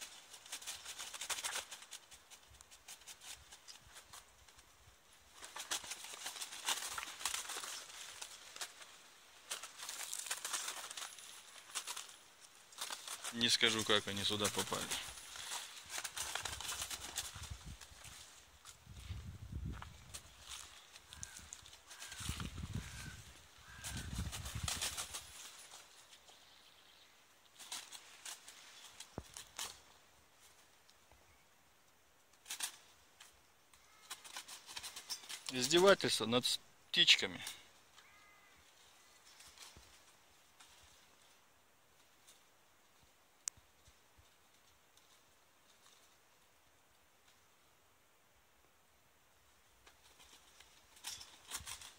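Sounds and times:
crows flapping against wire mesh: 0.0 - 26.5, 27.4 - 31.1, 32.3 - 36.0, 37.4 - 46.4, 49.8 - 51.9.

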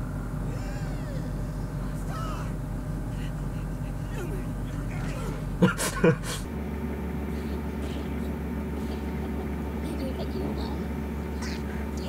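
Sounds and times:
steady low hum: 0.0 - 12.0
gliding voice-like sounds: 9.8 - 12.0.

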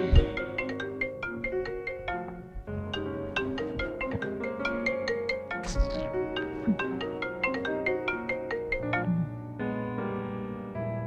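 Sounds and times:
marimba-style phone ringtone: 3.0 - 9.3.

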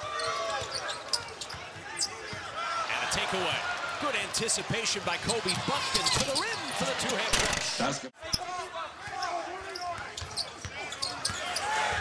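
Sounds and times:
sneaker squeaks: 0.1 - 2.5, 9.2 - 11.8.

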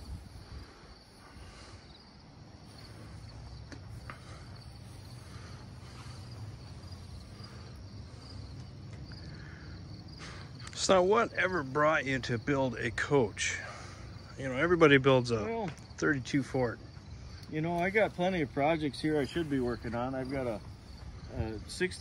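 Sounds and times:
crickets chirping: 0.0 - 22.0.

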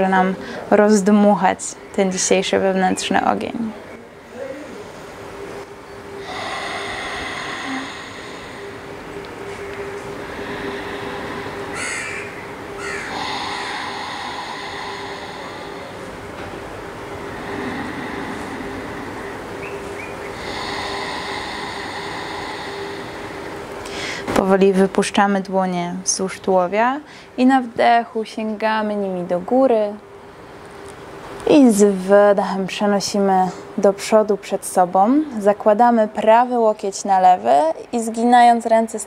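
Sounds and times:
deep breathing through throat: 6.1 - 24.4.

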